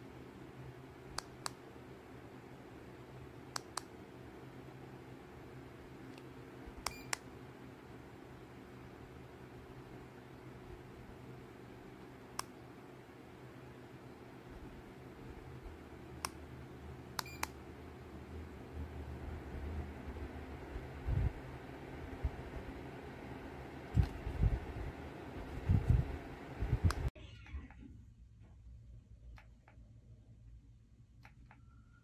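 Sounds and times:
ceiling fan humming: 0:00.0 - 0:32.0.

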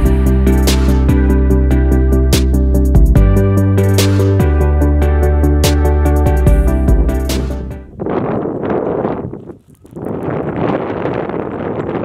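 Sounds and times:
wind buffeting microphone: 0:06.5 - 0:12.0.

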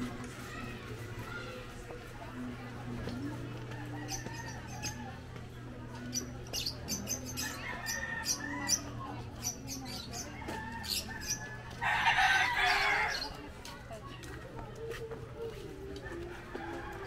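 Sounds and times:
rooster crowing: 0:11.7 - 0:13.2.

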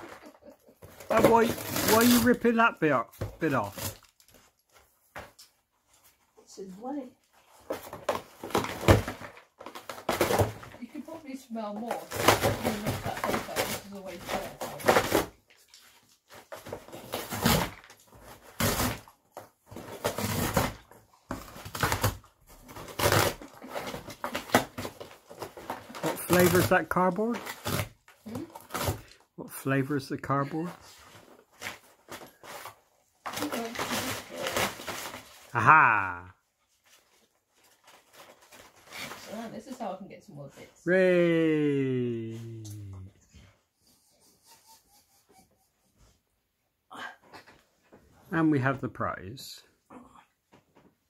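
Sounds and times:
dog tearing and chewing cardboard: 0:00.0 - 0:02.6, 0:07.5 - 0:29.2, 0:31.1 - 0:35.5, 0:36.8 - 0:39.7.

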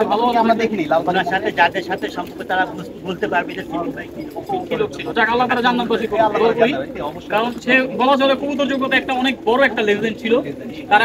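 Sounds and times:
man talking: 0:00.0 - 0:11.0
pigeons cooing: 0:00.0 - 0:11.0.

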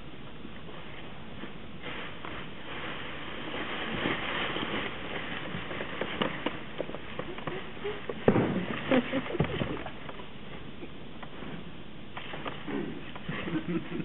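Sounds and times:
footsteps crunching dry leaves: 0:00.7 - 0:09.4.

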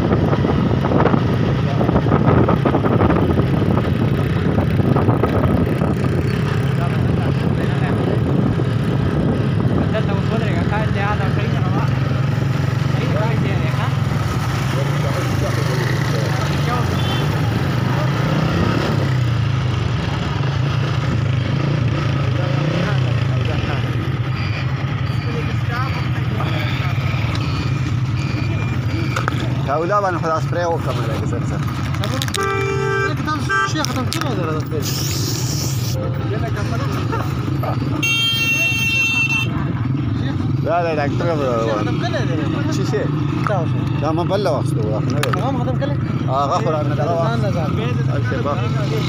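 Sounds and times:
engine rumbling: 0:00.0 - 0:49.0
crowd voices: 0:04.0 - 0:49.0
high steady tone: 0:35.7 - 0:37.2.

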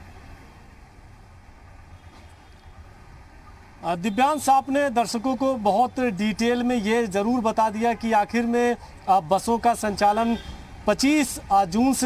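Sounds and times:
distant traffic rumble: 0:00.0 - 0:12.0.

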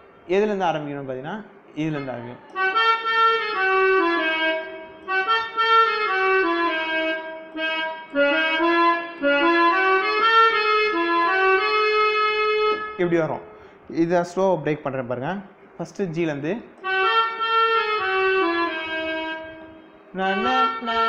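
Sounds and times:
electronic keyboard slow melody: 0:02.4 - 0:13.8, 0:16.7 - 0:21.0.

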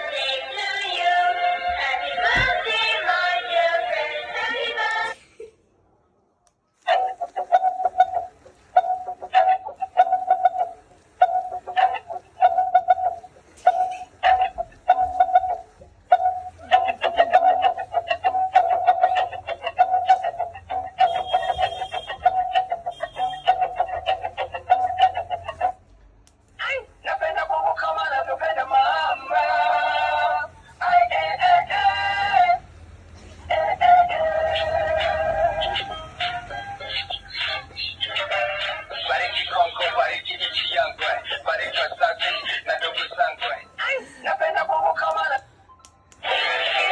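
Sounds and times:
toy playing sped-up synthetic singing: 0:00.0 - 0:05.2, 0:06.9 - 0:25.8, 0:26.6 - 0:32.7, 0:33.5 - 0:45.4, 0:46.2 - 0:46.9
toy playing electronic tune: 0:20.6 - 0:25.2, 0:34.6 - 0:37.6.

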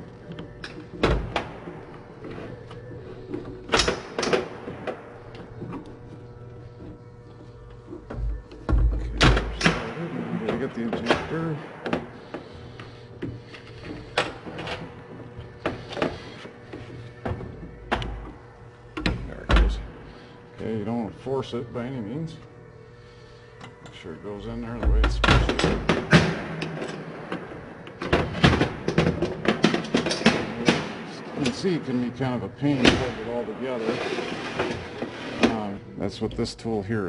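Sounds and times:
background music: 0:00.0 - 0:37.0.

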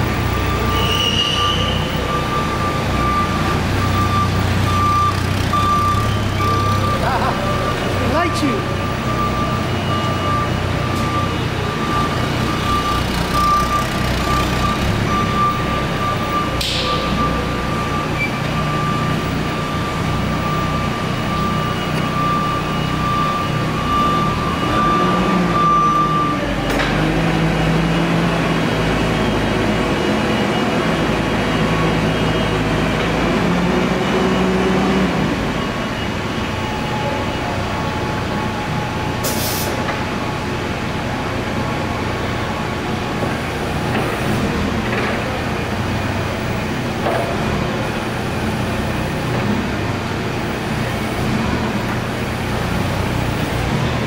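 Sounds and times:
forklift engine running: 0:00.0 - 0:54.0.

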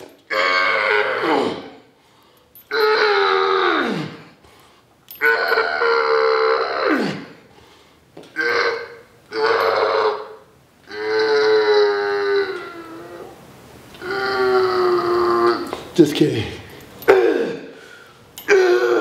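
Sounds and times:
man grunting yells: 0:00.3 - 0:01.8, 0:18.5 - 0:19.0.

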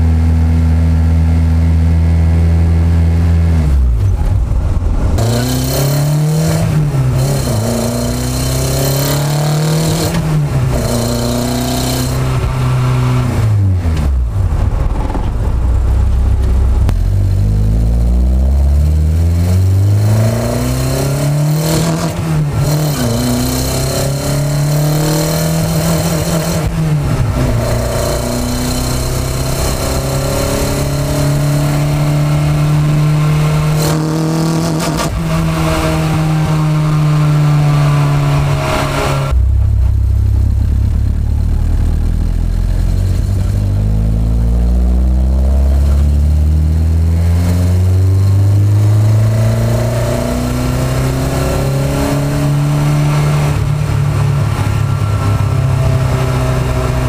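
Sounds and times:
car engine revving while driving: 0:00.0 - 0:57.0.

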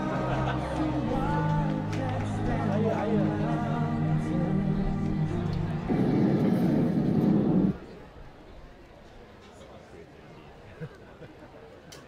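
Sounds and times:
loud low noisy sound effect: 0:01.1 - 0:07.8.

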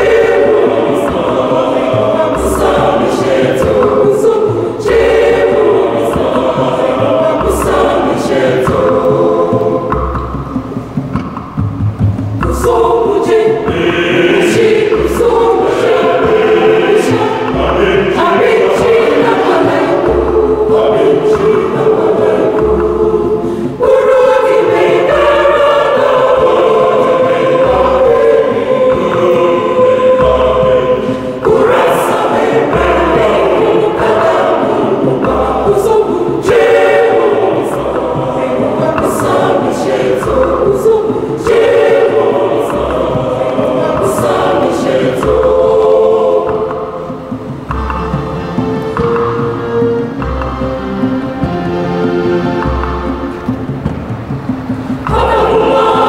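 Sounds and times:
church choir singing: 0:00.0 - 0:11.4, 0:12.4 - 0:56.0
low percussion beat: 0:00.0 - 0:56.0.

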